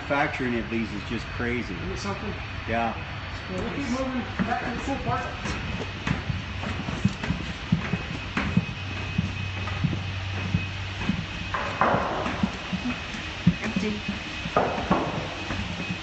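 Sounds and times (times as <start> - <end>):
footsteps on floor panels: 3.4 - 16.0.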